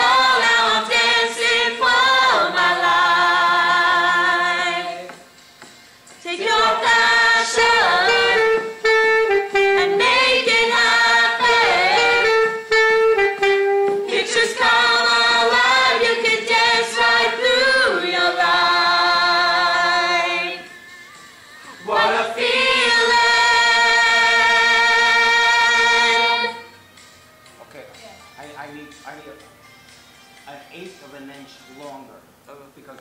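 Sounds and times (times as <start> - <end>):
group of young singers singing: 0.0 - 5.3, 6.2 - 8.7, 9.8 - 12.5, 14.0 - 20.7, 21.7 - 26.7.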